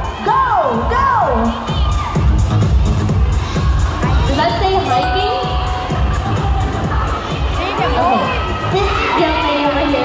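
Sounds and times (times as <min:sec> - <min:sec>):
crowd shouting and cheering: 0:00.0 - 0:10.0
music with bass beat: 0:00.0 - 0:10.0.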